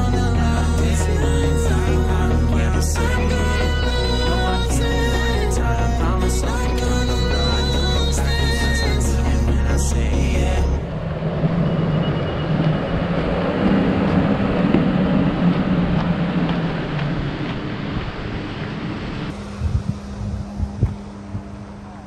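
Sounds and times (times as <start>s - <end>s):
music: 0.0s - 10.8s
wind on microphone: 10.8s - 22.0s.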